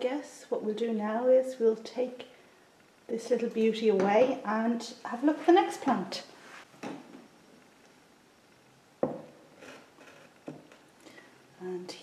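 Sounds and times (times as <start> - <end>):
pot knocking on wooden table: 9.0 - 9.3.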